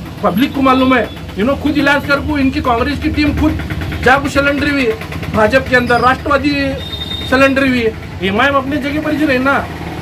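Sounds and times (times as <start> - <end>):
man speaking: 0.2 - 9.7.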